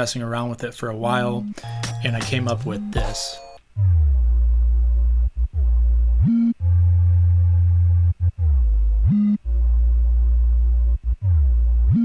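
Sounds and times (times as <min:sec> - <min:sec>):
deep sub-bass note: 0:03.7 - 0:12.0.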